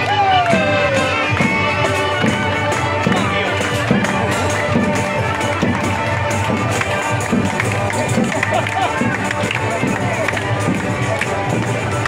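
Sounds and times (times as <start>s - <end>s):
crowd talking: 0.0s - 12.0s
folk band playing: 0.0s - 12.0s.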